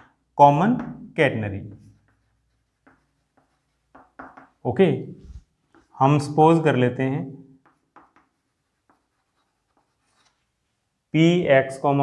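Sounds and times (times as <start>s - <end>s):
chalk scratching on blackboard: 1.7s - 4.6s, 7.6s - 10.6s.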